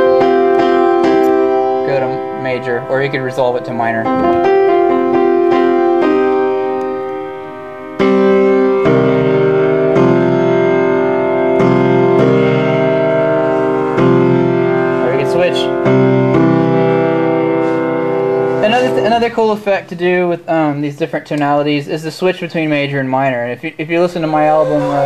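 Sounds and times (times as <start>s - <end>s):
piano chords: 0.0s - 20.5s, 24.2s - 25.0s.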